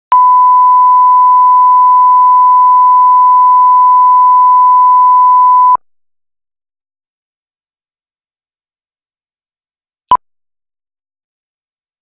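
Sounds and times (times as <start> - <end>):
steady test tone beep: 0.1 - 5.8.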